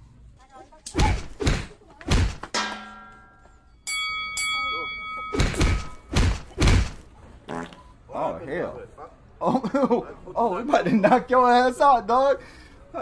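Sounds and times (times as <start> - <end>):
heavy thuds: 1.0 - 2.9, 5.4 - 7.1
ringing tone: 2.8 - 6.1.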